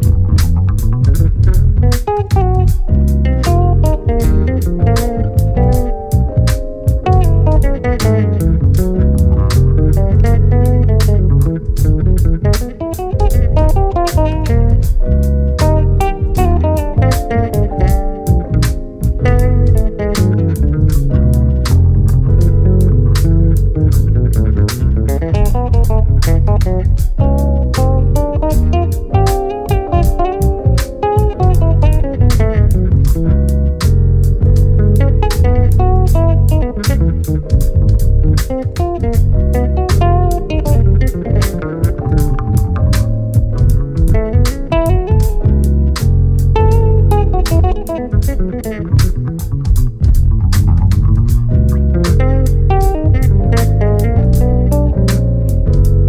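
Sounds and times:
electric bass guitars playing: 0.0s - 56.0s
sharp percussion beat: 0.0s - 56.0s.

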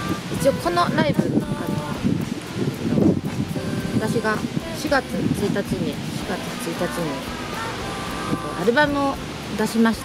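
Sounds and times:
faint background music: 0.0s - 10.0s
wind buffeting microphone: 0.0s - 10.0s.

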